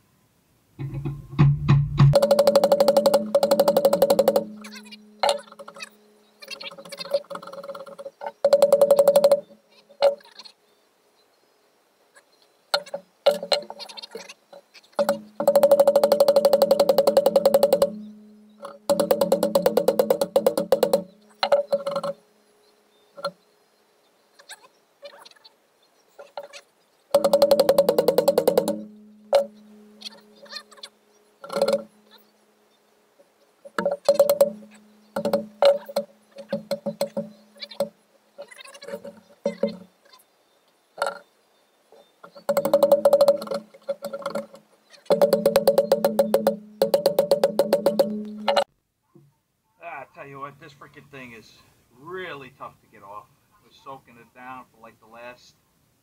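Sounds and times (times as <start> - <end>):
hammer tapping on metal wrench: 0.8 - 5.8, 8.4 - 10.2, 15.0 - 22.2, 27.1 - 29.6, 31.4 - 31.9, 33.7 - 38.0, 42.3 - 44.5, 45.1 - 48.7.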